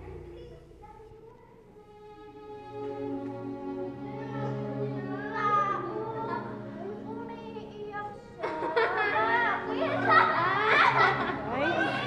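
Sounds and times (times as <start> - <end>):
dramatic string music: 1.8 - 12.0.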